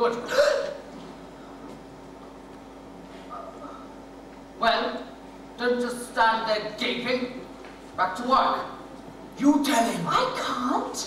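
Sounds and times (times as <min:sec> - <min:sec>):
faint hall hum: 0:00.0 - 0:11.0.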